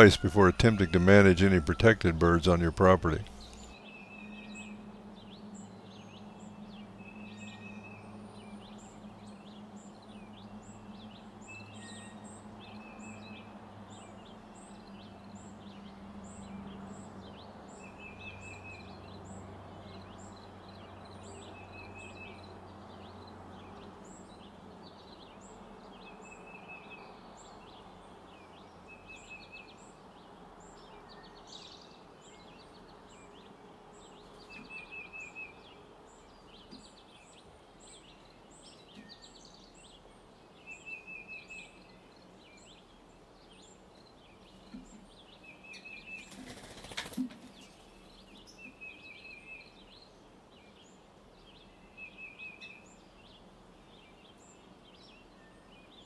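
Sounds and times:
bird rapid trill: 0:45.7 - 0:48.0.

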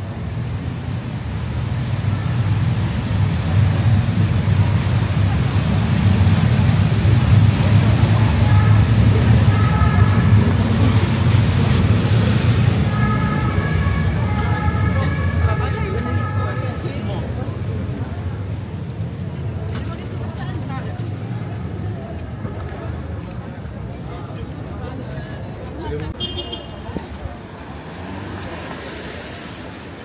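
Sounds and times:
traffic rumble: 0:00.0 - 0:30.0
two-tone emergency siren: 0:08.4 - 0:11.0, 0:12.8 - 0:17.1
tyre hiss on wet road: 0:27.7 - 0:30.0.

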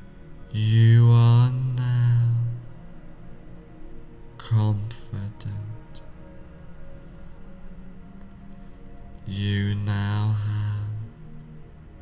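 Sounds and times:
low voice chanting: 0:00.0 - 0:08.2, 0:09.0 - 0:12.0
soft meditation music: 0:00.0 - 0:12.0.

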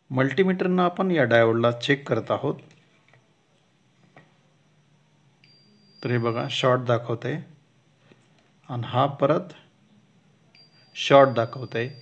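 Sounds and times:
multimeter continuity beep: 0:00.0 - 0:12.0.

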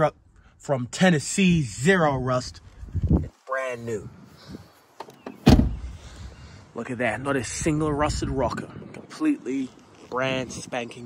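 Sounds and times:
car door shutting thud: 0:05.0 - 0:06.0.

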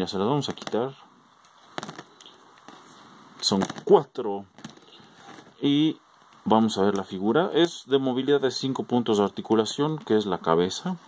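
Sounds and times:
handling noise: 0:01.5 - 0:05.6.

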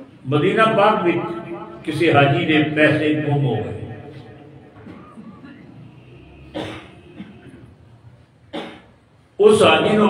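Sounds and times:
man coughing: 0:04.9 - 0:05.8, 0:06.5 - 0:07.7, 0:08.5 - 0:09.0.

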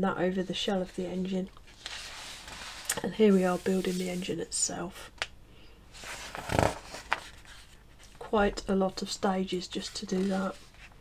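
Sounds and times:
paper pages rustling: 0:01.6 - 0:04.2, 0:06.0 - 0:08.3, 0:09.0 - 0:11.0.

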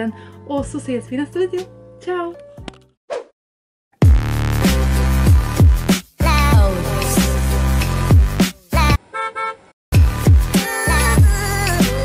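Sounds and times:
electronic music: 0:04.0 - 0:09.0
cartoon car horn honking: 0:09.0 - 0:09.7.

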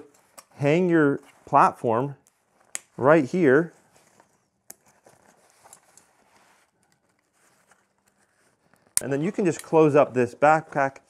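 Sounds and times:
backpack straps rustling: 0:02.3 - 0:09.9.

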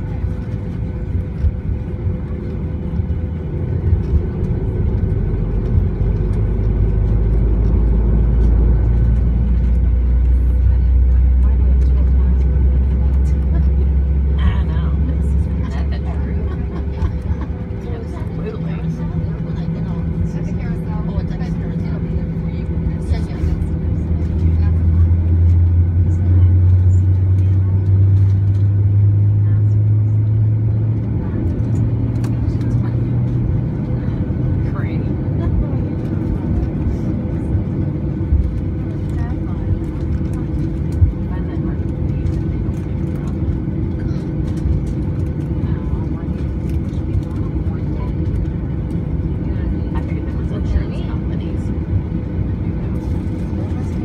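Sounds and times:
jet engine cabin rumble: 0:00.0 - 0:54.0
strong low hum: 0:00.0 - 0:54.0.

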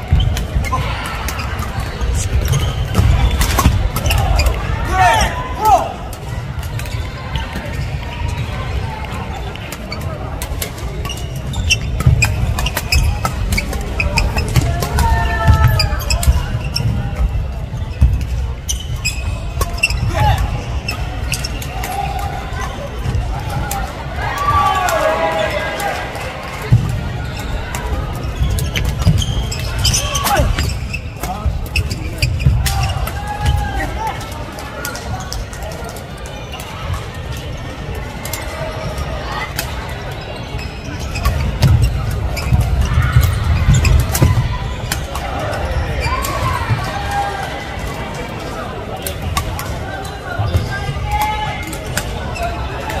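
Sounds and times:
shoe squeaks: 0:00.0 - 0:04.6, 0:11.0 - 0:22.9, 0:27.2 - 0:33.4, 0:38.6 - 0:44.4
background voices in a hall: 0:00.0 - 0:53.0.

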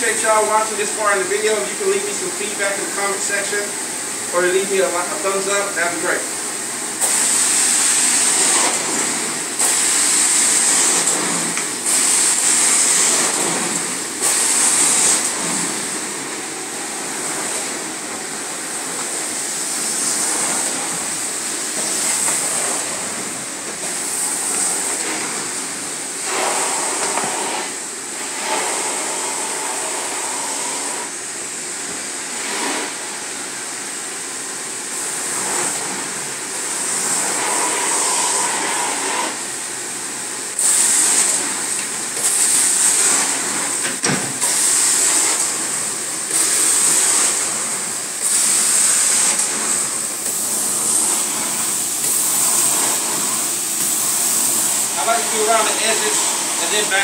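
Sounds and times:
carpet extraction wand hissing: 0:06.9 - 0:31.1, 0:36.8 - 0:39.5, 0:40.6 - 0:57.0.

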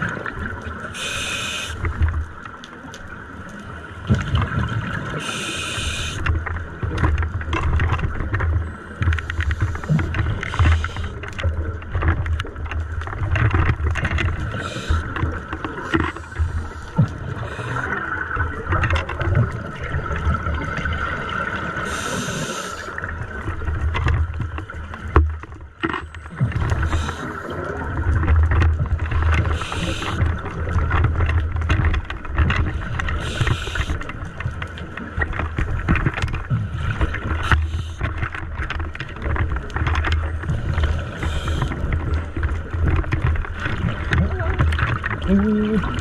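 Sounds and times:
exhaled bubbles gurgling: 0:00.0 - 0:46.0
hissing regulator inhale: 0:01.0 - 0:01.8, 0:05.2 - 0:06.2, 0:10.5 - 0:11.2, 0:14.5 - 0:15.0, 0:21.9 - 0:22.9, 0:29.5 - 0:30.2, 0:33.1 - 0:34.0, 0:40.9 - 0:41.8.

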